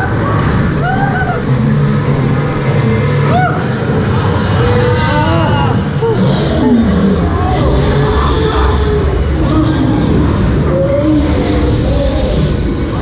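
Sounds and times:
low rumble of flume ride boat: 0:00.0 - 0:13.0.

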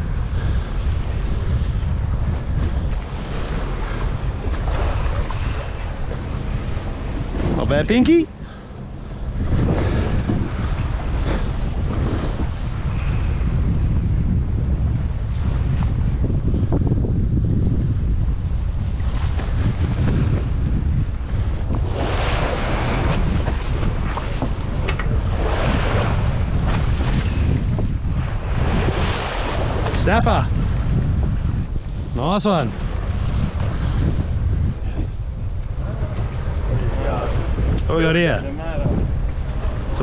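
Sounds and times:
water splashing along hull: 0:00.0 - 0:40.0
wind buffeting microphone: 0:00.0 - 0:40.0.

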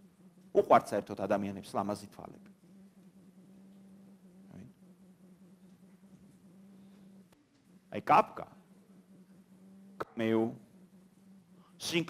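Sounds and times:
low electrical hum: 0:00.0 - 0:12.0.

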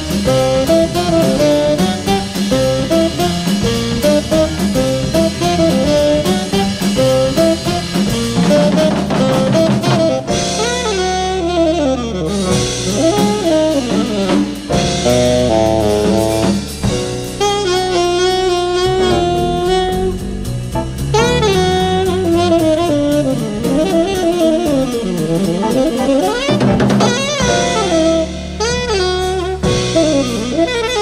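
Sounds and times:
bass: 0:00.0 - 0:31.0
drum kit: 0:00.0 - 0:31.0
piano: 0:00.0 - 0:31.0
saxophone solo: 0:00.0 - 0:31.0.

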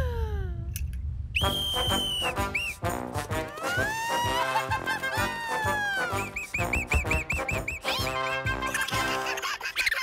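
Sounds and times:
low rumble: 0:00.0 - 0:02.7
steady high whistle: 0:01.3 - 0:02.9, 0:06.1 - 0:07.9.

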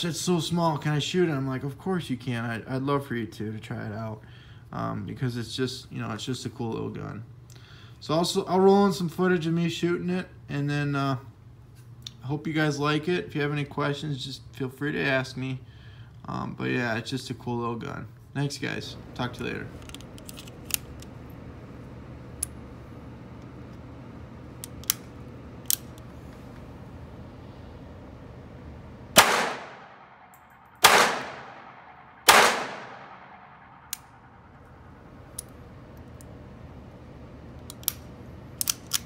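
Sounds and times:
steady low hum: 0:00.0 - 0:39.0
pistol handling clicks: 0:19.8 - 0:21.1, 0:24.6 - 0:26.1, 0:29.2 - 0:36.3, 0:37.6 - 0:39.0
pistol shots with ringing echo: 0:29.2 - 0:35.0.

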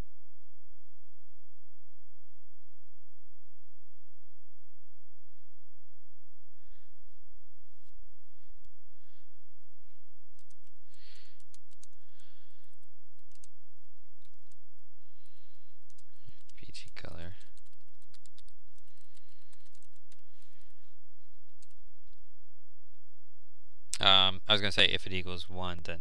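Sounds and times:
steady low hum: 0:00.0 - 0:26.0
computer keyboard typing: 0:10.4 - 0:12.0, 0:12.7 - 0:13.5, 0:14.2 - 0:14.6, 0:15.9 - 0:20.2, 0:21.5 - 0:21.8.

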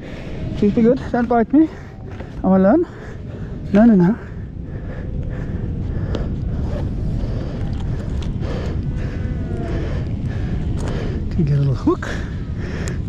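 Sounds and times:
low wind rumble on microphone: 0:00.0 - 0:13.0.

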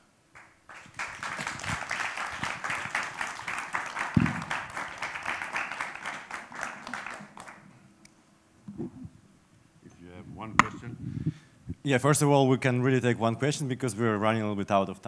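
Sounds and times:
audience applauding: 0:00.4 - 0:07.8.

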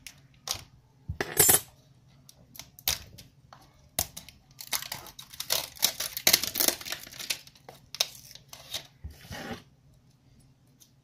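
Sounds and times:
cellophane wrap tearing and crinkling: 0:04.2 - 0:09.0.

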